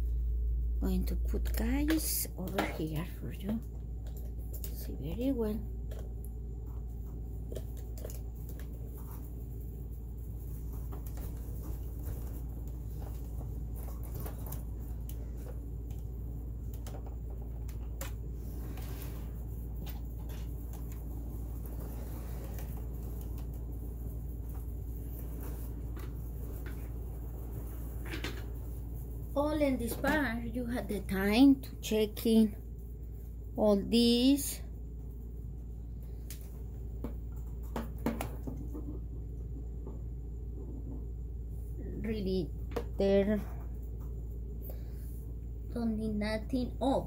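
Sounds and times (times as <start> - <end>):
steady low hum: 0.0 - 47.0.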